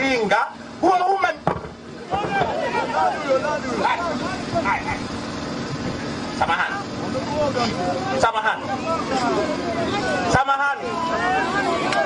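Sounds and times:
low mechanical hum: 0.0 - 12.0
people talking: 2.0 - 5.2, 6.3 - 12.0.

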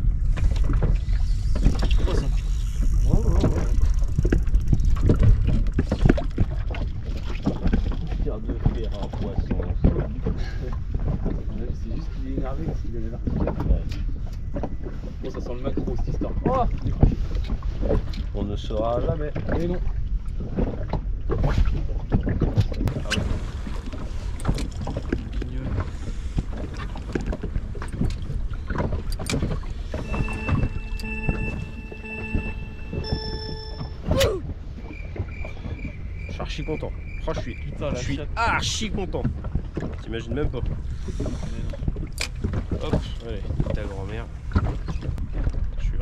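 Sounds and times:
wind on microphone: 0.0 - 18.5
water against boat hull: 0.0 - 46.0
chord of steady tones: 30.0 - 34.2.

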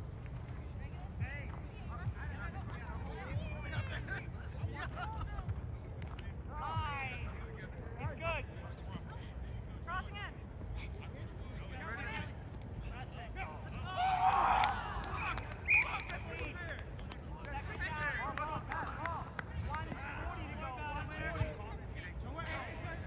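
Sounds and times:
people shouting and calling out: 13.5 - 16.5.

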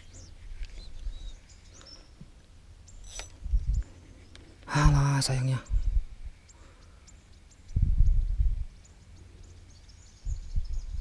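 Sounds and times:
faint bird calls: 0.0 - 2.3, 2.9 - 7.9.

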